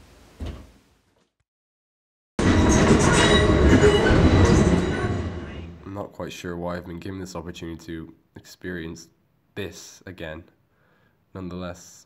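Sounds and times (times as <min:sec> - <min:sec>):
train running inside carriage: 0:02.4 - 0:05.2.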